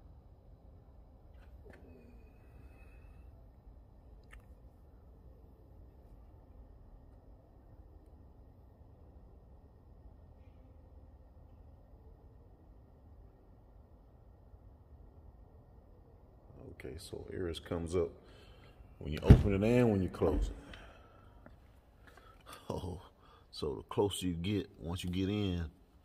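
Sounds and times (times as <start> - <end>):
faint clicks: 4.2 - 4.6.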